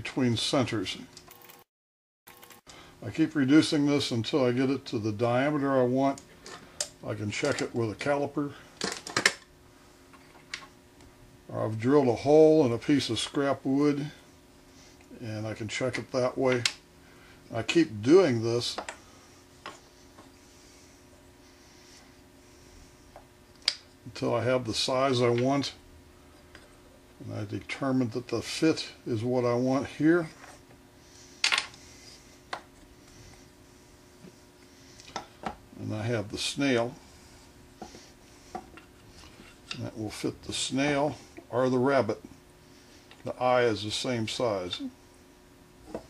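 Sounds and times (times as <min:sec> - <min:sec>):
faint steady hum: 0:02.3 - 0:46.0.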